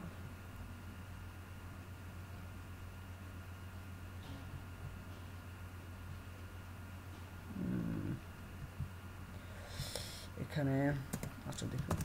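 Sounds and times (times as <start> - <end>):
low electrical hum: 0.0 - 12.0
person murmuring hmm: 7.5 - 8.3.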